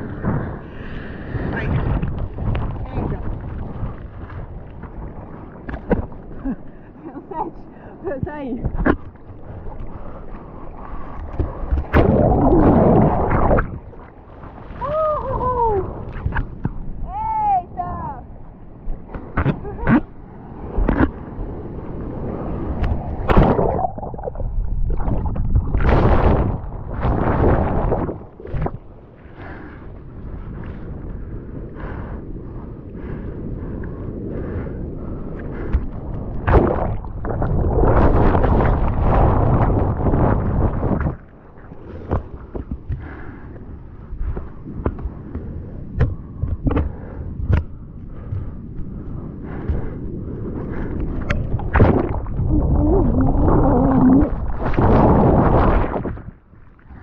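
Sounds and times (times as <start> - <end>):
muffled underwater wave rumble: 0.0 - 57.0.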